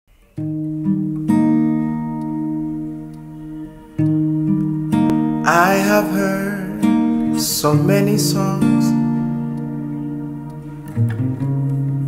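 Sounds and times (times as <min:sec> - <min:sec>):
acoustic guitar chords ringing: 0:00.1 - 0:12.0.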